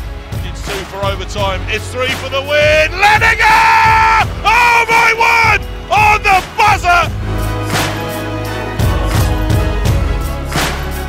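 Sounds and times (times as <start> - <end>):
backing music: 0.0 - 11.0
commentator yelling excitedly: 2.3 - 7.1.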